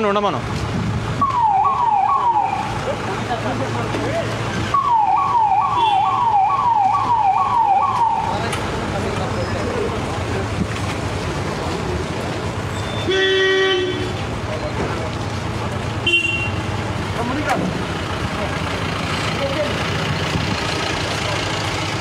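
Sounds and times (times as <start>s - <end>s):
electronic siren whooping: 1.2s - 2.7s, 4.8s - 8.3s
car horn toot: 5.7s - 6.2s, 12.9s - 14.1s, 16.0s - 16.6s.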